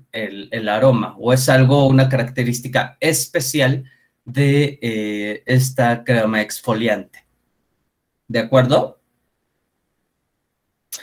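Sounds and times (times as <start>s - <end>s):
man speaking: 0.0s - 7.2s, 8.3s - 9.0s.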